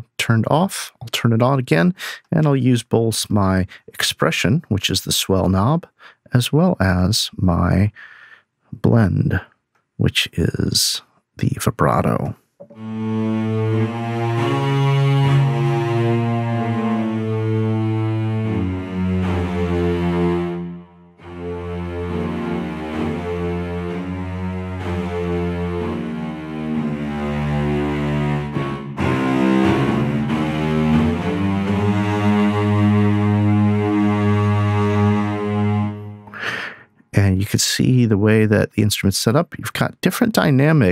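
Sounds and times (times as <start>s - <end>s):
cello section playing legato: 12.6s - 36.6s.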